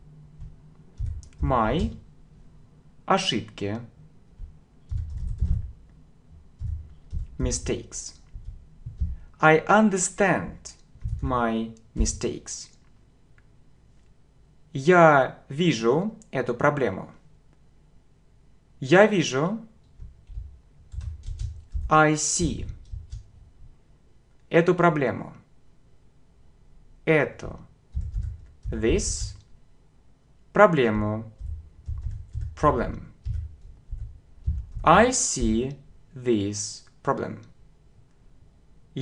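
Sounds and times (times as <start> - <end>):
typing on computer keyboard: 0.4 - 2.0, 4.4 - 5.8, 6.6 - 7.4, 11.0 - 11.3, 19.8 - 22.0, 22.6 - 23.3, 27.9 - 29.5, 31.4 - 35.5
man speaking: 1.3 - 2.1, 3.0 - 4.0, 7.4 - 8.3, 9.3 - 12.8, 14.8 - 17.2, 18.8 - 19.7, 21.9 - 22.8, 27.1 - 27.7, 28.7 - 29.4, 30.5 - 31.4, 32.6 - 33.2, 34.8 - 37.5.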